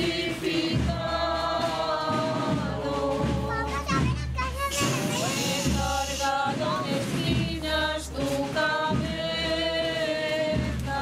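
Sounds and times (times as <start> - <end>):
crowd singing a hymn: 0.0 - 4.0, 4.8 - 11.0.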